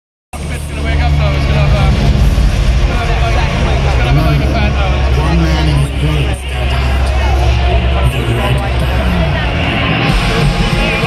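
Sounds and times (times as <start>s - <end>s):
crowd voices: 0.3s - 11.0s
low bass drone from speakers: 0.3s - 11.0s.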